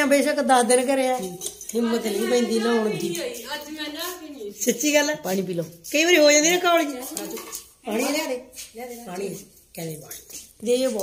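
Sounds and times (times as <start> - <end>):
woman's voice: 1.8 - 4.8, 6.2 - 11.0.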